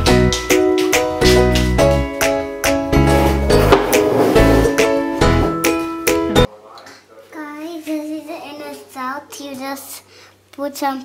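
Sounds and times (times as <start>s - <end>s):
upbeat music with plucked strings: 0.0s - 6.5s.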